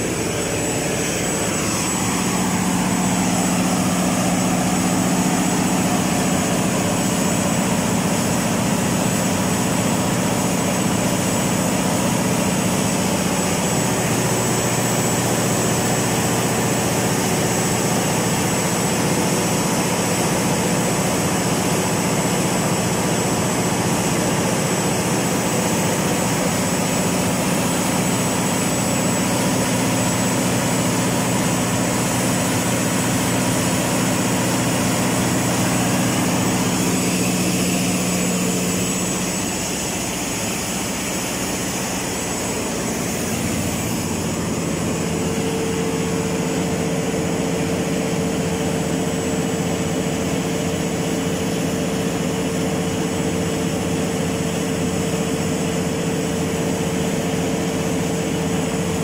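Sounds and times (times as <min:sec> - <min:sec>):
diesel generator engine droning: 0:00.0 - 0:59.0.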